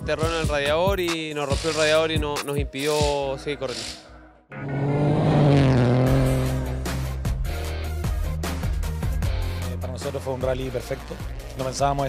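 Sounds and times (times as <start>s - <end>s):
hiss: 3.7s - 4.0s
rally car engine at speed: 4.5s - 7.4s.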